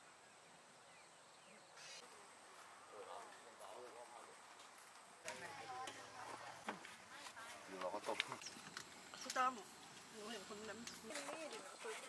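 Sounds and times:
short hiss: 1.8s - 2.0s.

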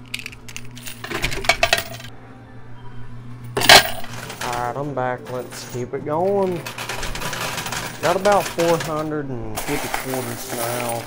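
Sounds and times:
coins clinking in a coin pusher: 0.0s - 2.1s, 3.5s - 11.0s
low steady hum: 0.0s - 11.0s.

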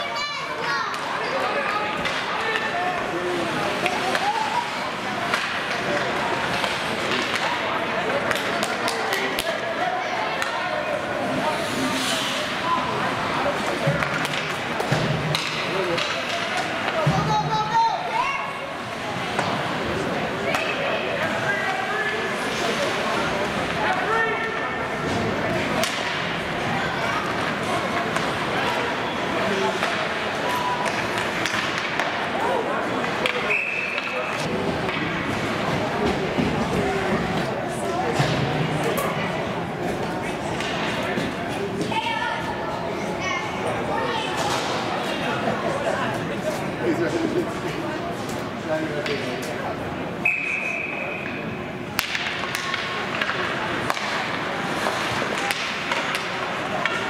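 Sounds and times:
hollow ice rink noise: 0.0s - 57.0s
hockey sticks clacking: 0.5s - 17.8s, 18.9s - 39.2s, 39.8s - 42.1s, 44.3s - 45.2s, 49.0s - 49.6s, 50.2s - 57.0s
hockey stick hitting puck: 0.9s - 3.1s, 5.2s - 9.5s, 13.8s - 17.3s, 23.6s - 26.3s, 29.7s - 32.3s, 52.0s - 57.0s
referee whistle: 50.2s - 51.3s.

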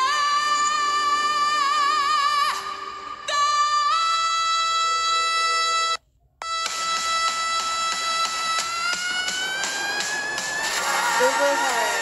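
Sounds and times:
backing music with beat: 5.4s - 12.0s.

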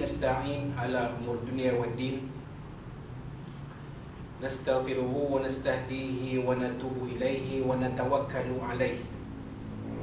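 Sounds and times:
man speaking: 0.0s - 2.4s, 4.4s - 9.2s
faint room noise: 0.0s - 10.0s
steady low hum: 0.0s - 10.0s.

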